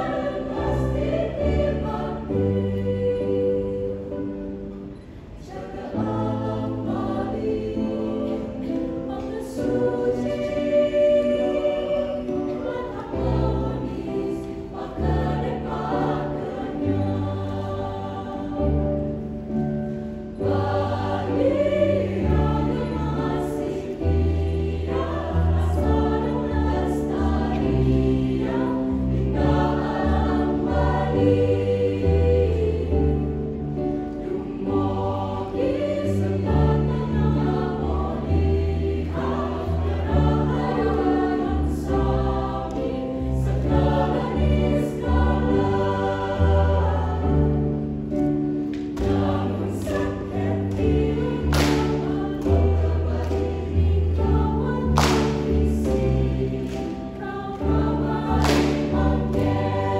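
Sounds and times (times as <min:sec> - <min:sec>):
mixed choir singing in harmony: 0:00.0 - 0:59.9.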